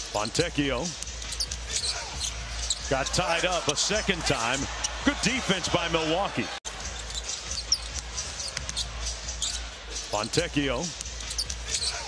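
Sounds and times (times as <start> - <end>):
sneakers squeaking on court: 0.9 - 3.0, 6.7 - 9.7, 10.9 - 12.0.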